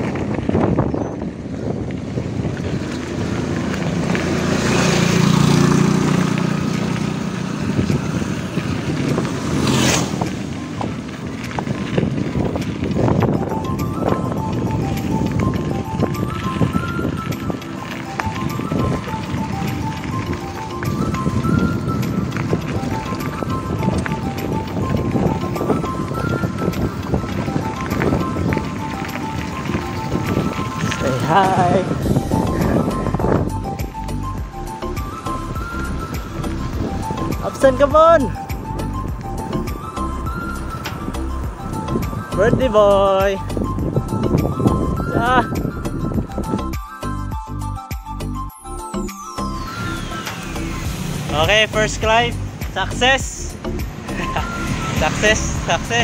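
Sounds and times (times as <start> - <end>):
tyres rolling on loose stones: 0.0 - 46.6, 49.4 - 56.0
wind on microphone: 0.0 - 56.0
background music with high melody: 12.6 - 56.0.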